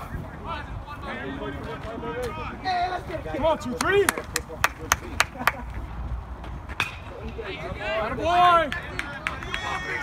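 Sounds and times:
hand claps: 0:03.8 - 0:05.6
people cheering: 0:08.1 - 0:10.0.

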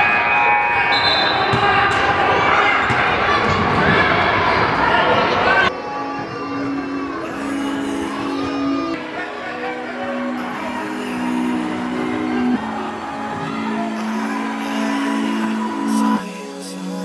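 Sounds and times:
gym crowd voices: 0:00.0 - 0:17.0
basketballs bouncing: 0:02.8 - 0:04.2.

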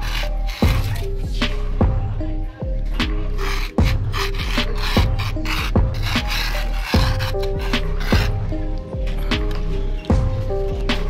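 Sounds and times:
wooden spoon scraping wet sand: 0:00.0 - 0:01.6, 0:02.8 - 0:08.6
background music with low beat: 0:00.0 - 0:11.0.

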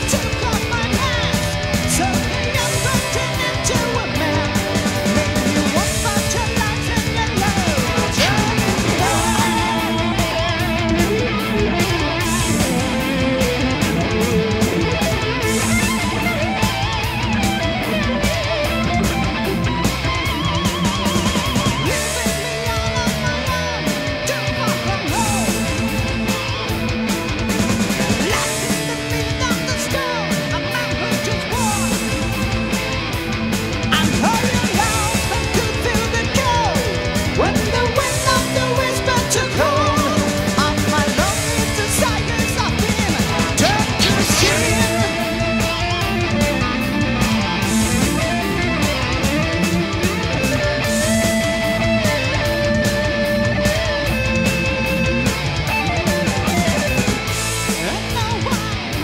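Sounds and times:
bass guitar: 0:00.0 - 0:59.0
drums: 0:00.0 - 0:59.0
electric guitar lead with vibrato: 0:00.0 - 0:59.0.

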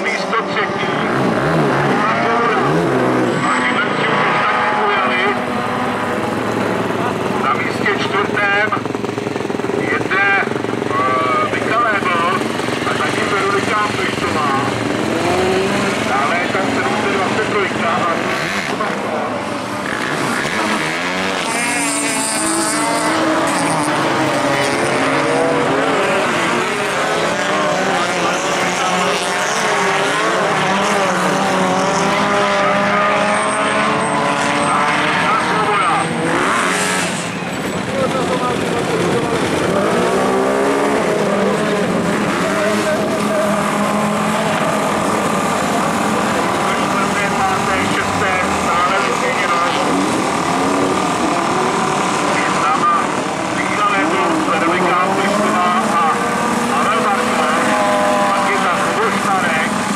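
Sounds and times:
race car engines revving: 0:00.0 - 0:59.9.

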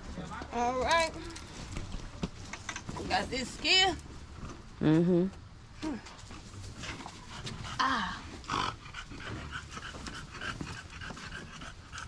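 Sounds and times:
small dog panting: 0:06.7 - 0:12.0.

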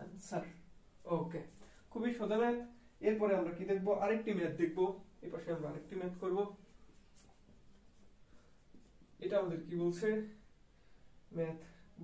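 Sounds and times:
person speaking: 0:00.0 - 0:10.6
marker writing on a whiteboard: 0:05.9 - 0:09.2.

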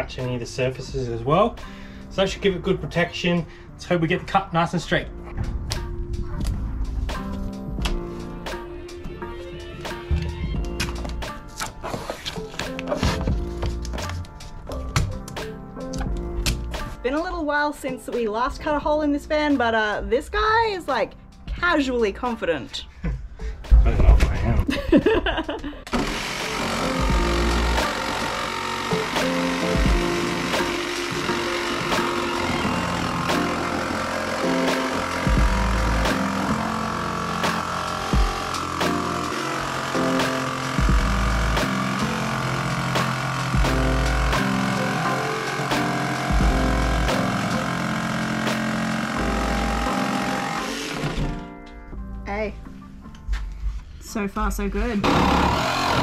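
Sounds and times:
background music with steady beat: 0:00.0 - 0:25.9, 0:26.5 - 0:55.2
jigsaw cutting sheet metal: 0:25.9 - 0:51.4, 0:55.0 - 0:56.0.

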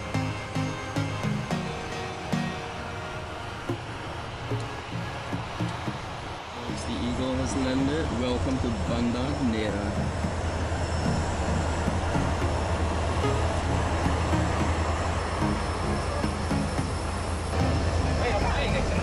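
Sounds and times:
turboprop cabin drone: 0:00.0 - 0:19.0.

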